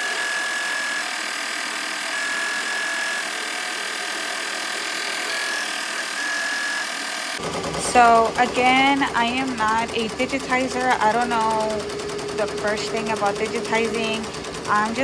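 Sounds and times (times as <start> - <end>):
embroidery machine stitching: 0.0 - 15.0.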